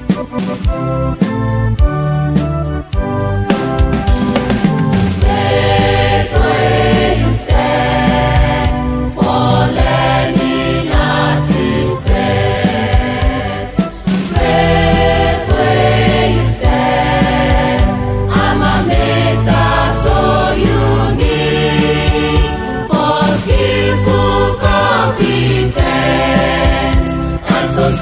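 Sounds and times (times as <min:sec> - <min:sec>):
instrumental accompaniment: 0:00.0 - 0:28.0
choir singing: 0:05.2 - 0:28.0.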